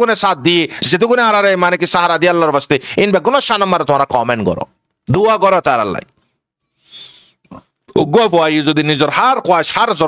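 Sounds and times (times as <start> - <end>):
man breathing into microphone: 6.6 - 7.6.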